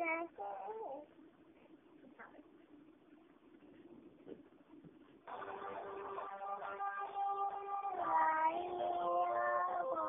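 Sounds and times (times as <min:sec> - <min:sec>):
backing music: 0:05.3 - 0:10.0
boy singing: 0:06.7 - 0:10.0.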